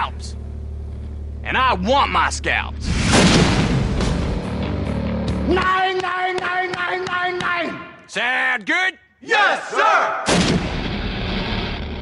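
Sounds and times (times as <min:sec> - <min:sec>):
booming trailer music hit: 0:02.8 - 0:05.5, 0:10.3 - 0:12.0.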